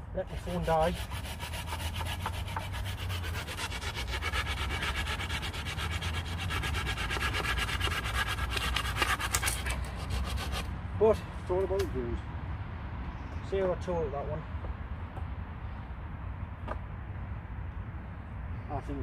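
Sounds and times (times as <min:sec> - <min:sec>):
hand saw cutting wood: 0:00.2 - 0:10.7.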